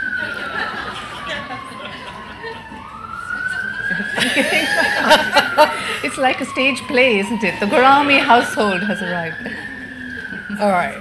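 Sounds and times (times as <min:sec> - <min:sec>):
emergency vehicle siren wailing: 0:00.0 - 0:11.0.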